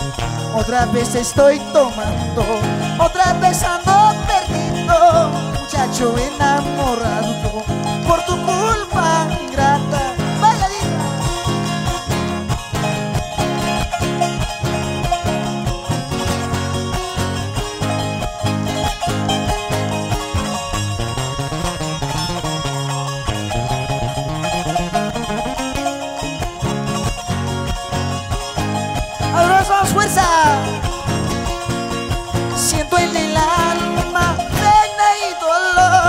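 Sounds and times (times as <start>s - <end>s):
low bass line: 0.0s - 35.0s
acoustic guitar: 0.0s - 36.0s
plucked charango: 0.0s - 36.0s.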